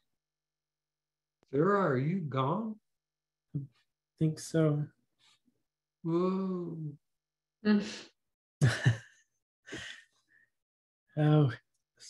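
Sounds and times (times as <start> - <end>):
man laughing over video call: 8.6 - 10.0.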